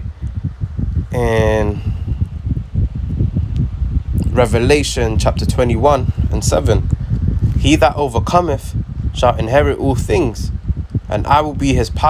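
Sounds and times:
low rumbling noise: 0:00.0 - 0:12.0.

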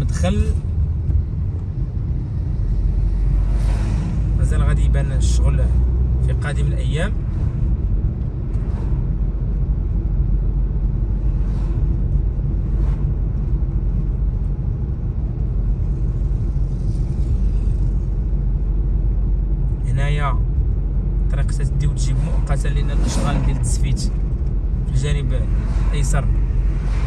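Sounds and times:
car tyres and engine rumble: 0:00.0 - 0:27.0.

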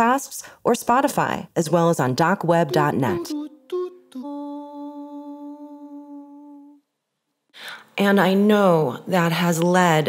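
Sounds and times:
held musical note: 0:02.7 - 0:06.6.

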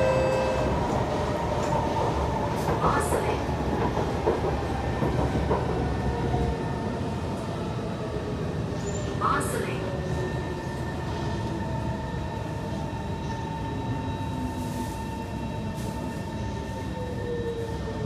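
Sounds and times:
metro car running noise: 0:00.0 - 0:18.0.

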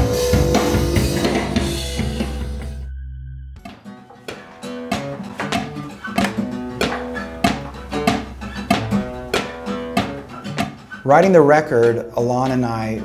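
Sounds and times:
acoustic guitar strumming: 0:00.0 - 0:03.0, 0:03.6 - 0:13.0.

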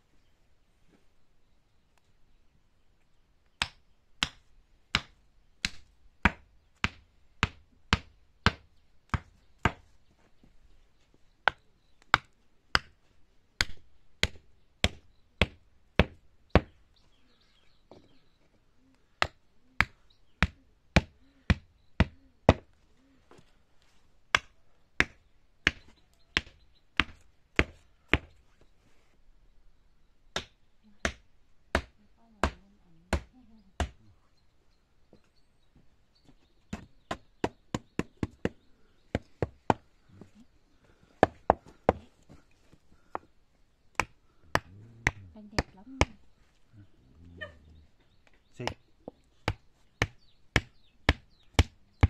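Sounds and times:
hammer knocking wooden stakes: 0:13.6 - 0:16.8, 0:30.4 - 0:34.0, 0:36.7 - 0:39.8, 0:41.2 - 0:42.1, 0:44.0 - 0:46.2, 0:48.6 - 0:51.8.

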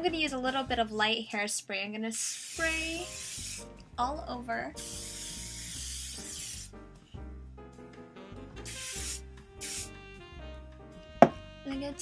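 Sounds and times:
background music: 0:00.0 - 0:01.2, 0:02.5 - 0:12.0
hairspray hissing: 0:02.2 - 0:03.7, 0:04.8 - 0:06.7, 0:08.7 - 0:09.9.

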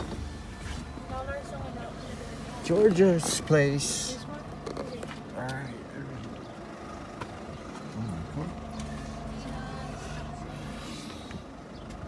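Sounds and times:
car engine and tyre noise: 0:00.0 - 0:12.0
low voices: 0:00.8 - 0:11.6.

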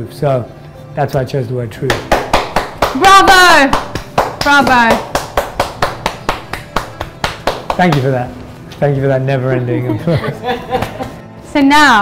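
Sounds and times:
person clapping: 0:01.9 - 0:08.2, 0:10.8 - 0:11.2.

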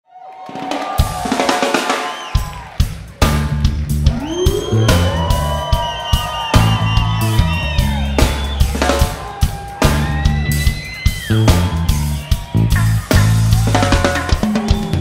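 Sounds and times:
live rock band playing: 0:00.8 - 0:15.0.

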